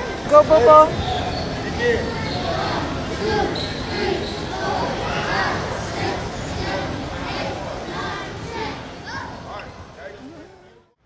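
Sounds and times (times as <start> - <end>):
echoing voices of children and adults: 0.0 - 10.9.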